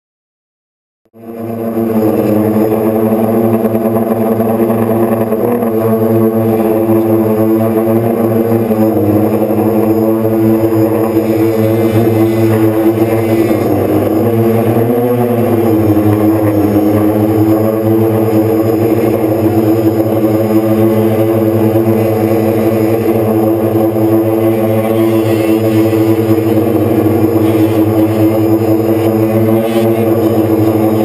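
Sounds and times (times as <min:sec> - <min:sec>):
drone motors humming: 0:01.1 - 0:31.0.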